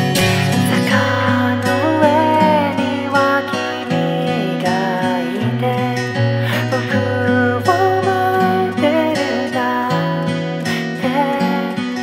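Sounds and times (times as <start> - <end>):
acoustic guitar accompaniment: 0.0 - 12.0
man singing: 0.0 - 12.0.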